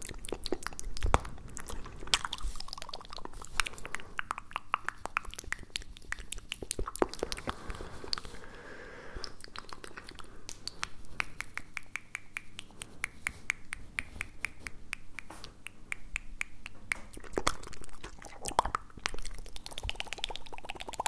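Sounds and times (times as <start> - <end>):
wet mouth clicks and pops: 0.0 - 8.4, 9.2 - 21.0.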